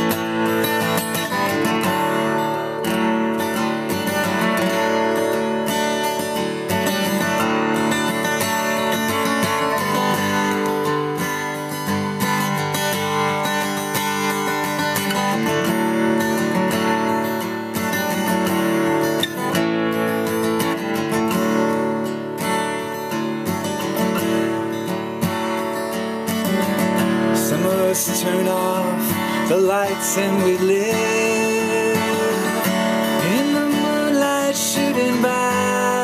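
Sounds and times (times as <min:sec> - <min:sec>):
acoustic guitar strumming chords: 0:00.0 - 0:36.0.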